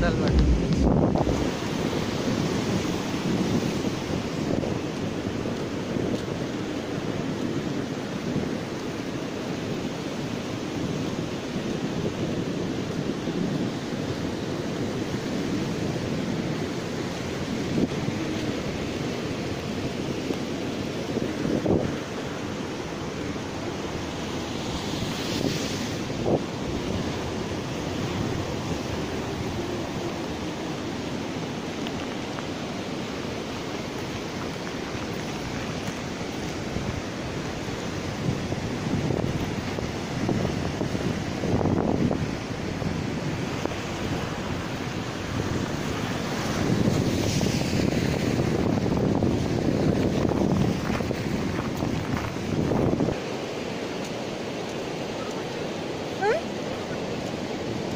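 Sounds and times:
surf washing onto beach: 0:00.0 - 0:57.9
wind buffeting microphone: 0:00.0 - 0:57.9.

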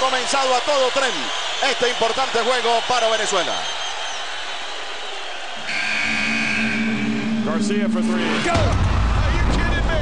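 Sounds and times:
murmur of arena crowd: 0:00.0 - 0:10.0
steady electronic buzzing tone: 0:05.6 - 0:08.7.

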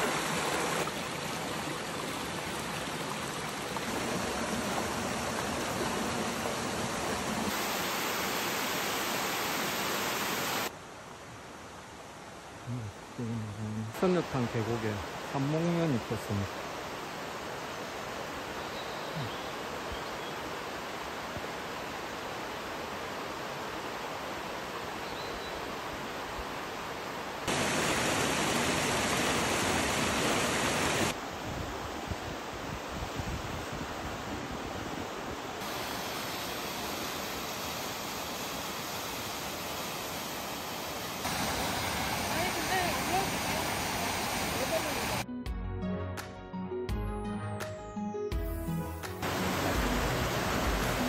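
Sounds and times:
stream flowing over rocks: 0:00.0 - 0:10.8, 0:14.0 - 0:31.4, 0:33.8 - 0:45.2, 0:49.2 - 0:51.0.

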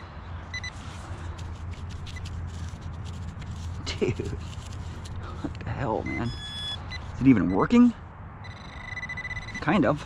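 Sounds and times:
pinpointer high beeps: 0:06.1 - 0:07.8, 0:08.4 - 0:09.8.

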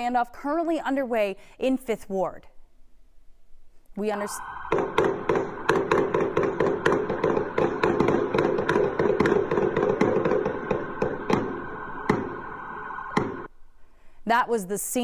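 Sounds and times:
steady droning tone: 0:04.1 - 0:13.7.

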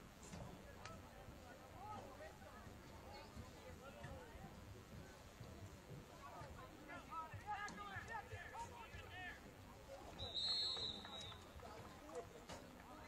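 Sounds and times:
referee's whistle blast: 0:10.2 - 0:11.4.

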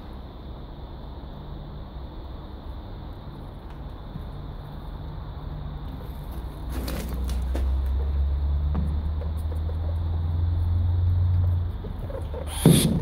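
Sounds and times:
low engine-like rumble: 0:00.0 - 0:13.0.

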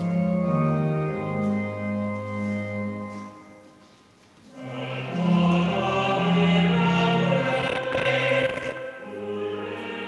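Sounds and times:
choir singing church music: 0:04.4 - 0:10.0.

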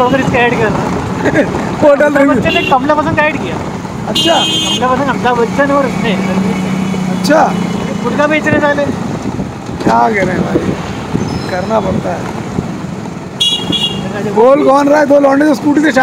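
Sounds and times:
motorcycle engine and road rumble: 0:00.0 - 0:16.0
vehicle horn honking: 0:02.4 - 0:03.0, 0:04.1 - 0:04.9, 0:13.4 - 0:14.2.

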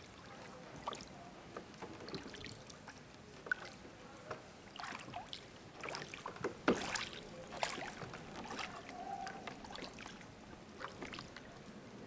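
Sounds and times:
oar splashing in water: 0:00.0 - 0:11.6.

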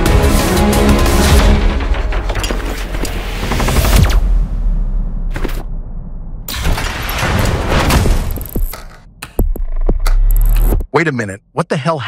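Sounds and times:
soundtrack music: 0:00.0 - 0:06.4.

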